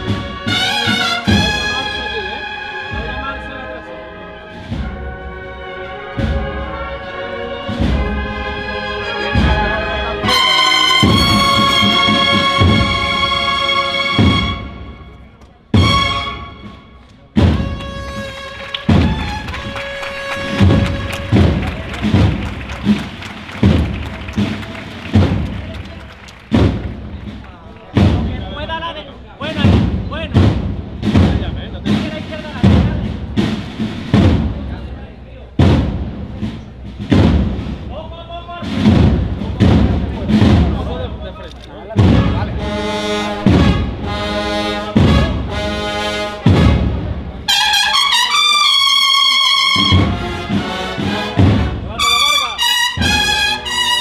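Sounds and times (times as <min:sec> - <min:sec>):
cornets playing: 0:00.0 - 0:26.5, 0:42.0 - 0:54.0
drums beating: 0:00.0 - 0:54.0.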